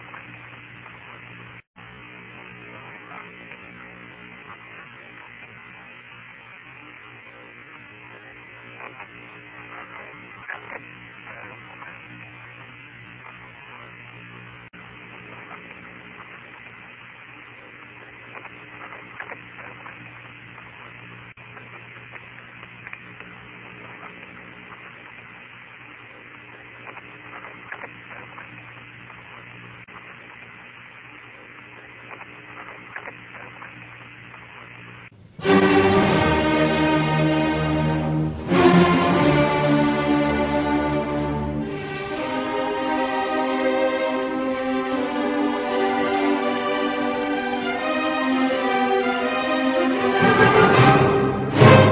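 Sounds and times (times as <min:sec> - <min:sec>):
faint radio crackles: 0:00.0 - 0:35.9
radio hiss: 0:00.0 - 0:50.4.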